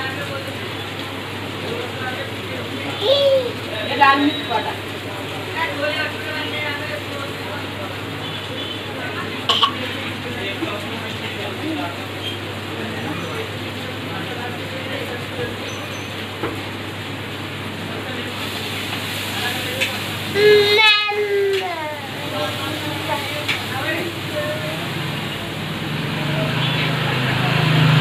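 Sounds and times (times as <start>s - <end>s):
spices sizzling in oil: 18.1s - 25.3s.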